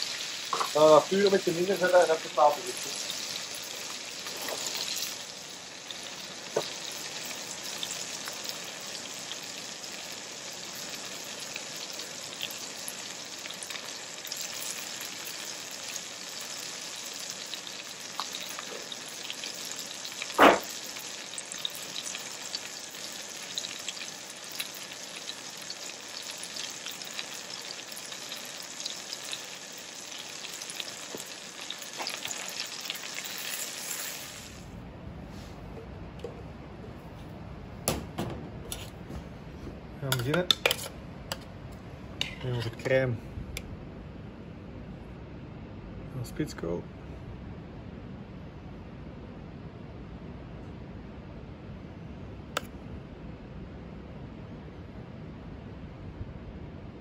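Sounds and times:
meat sizzling in a pan: 0:00.0 - 0:34.7
sharp knock: 0:20.4 - 0:20.7.

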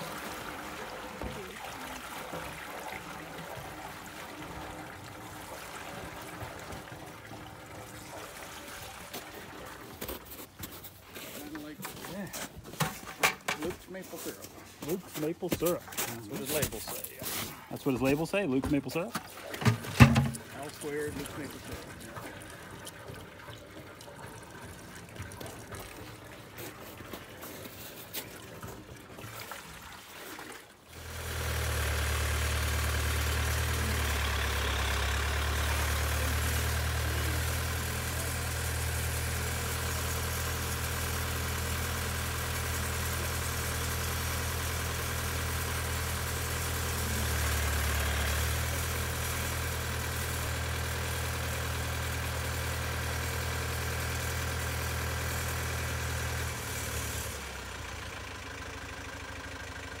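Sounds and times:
diesel tractor engine idling: 0:31.0 - 1:00.0.

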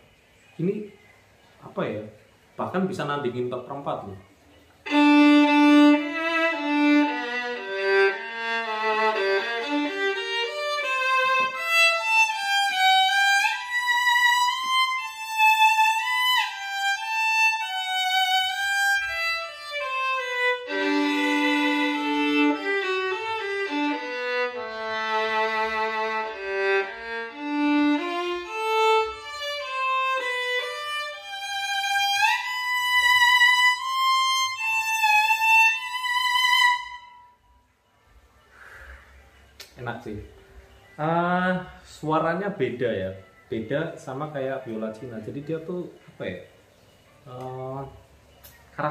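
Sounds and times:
solo violin melody: 0:04.8 - 0:37.4.

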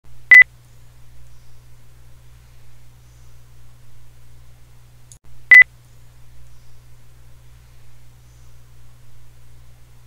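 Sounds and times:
faint low hum: 0:00.1 - 0:10.0.

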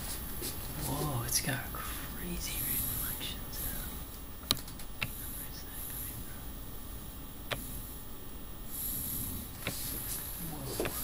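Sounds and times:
room noise hiss: 0:00.0 - 0:11.0
sharp clicks: 0:04.4 - 0:05.2.

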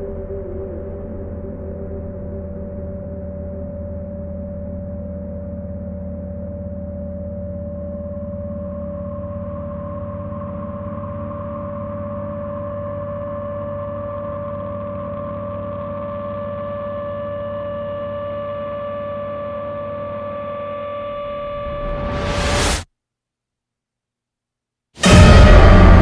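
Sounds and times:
low rumble drone: 0:00.0 - 0:16.6, 0:25.0 - 0:26.0.

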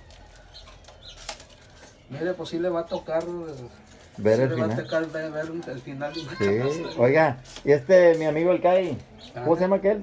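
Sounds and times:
strips rustling and crackling: 0:00.0 - 0:06.6.

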